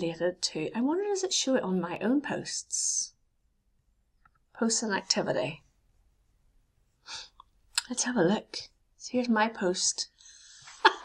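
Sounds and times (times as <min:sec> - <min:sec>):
person breathing: 0:07.0 - 0:07.4, 0:10.2 - 0:10.8.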